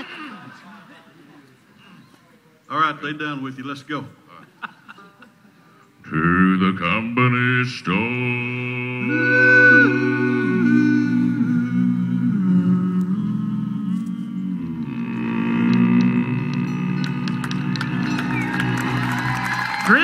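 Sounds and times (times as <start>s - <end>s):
vocal group and band holding chord: 6.1s - 19.8s
deep bass voice sustaining note: 8.8s - 19.4s
audience applause and cheering: 15.0s - 20.0s.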